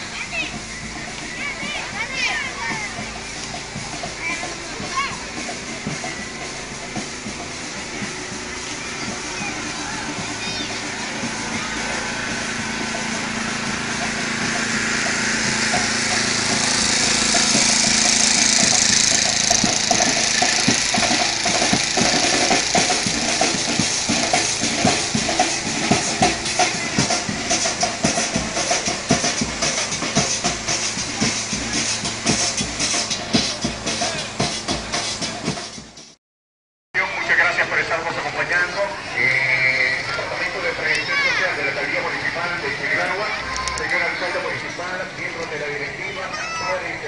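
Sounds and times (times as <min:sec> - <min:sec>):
crowd chatter: 0:00.0 - 0:36.1, 0:37.0 - 0:47.0
music with a strong beat: 0:00.0 - 0:36.2.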